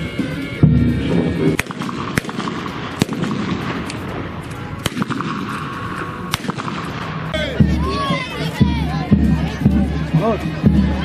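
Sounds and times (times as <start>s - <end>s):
outdoor crowd noise: 0.0s - 11.0s
sharp bangs: 0.6s - 7.9s.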